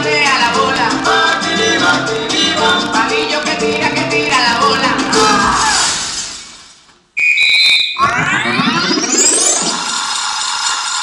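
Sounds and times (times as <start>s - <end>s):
sustained music: 0.0s - 6.5s
high electronic beep: 7.2s - 10.1s
rising synthesizer sweep: 8.0s - 10.0s.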